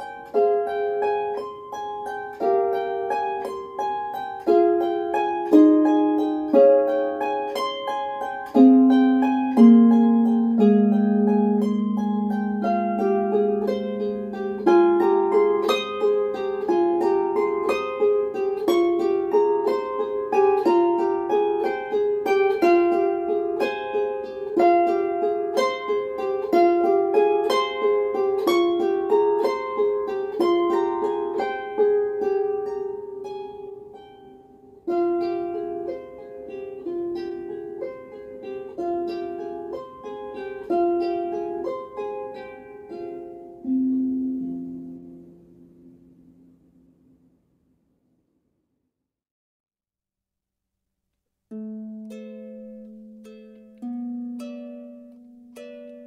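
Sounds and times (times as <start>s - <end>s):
harp plucked notes: 0.0s - 47.3s, 51.5s - 56.0s.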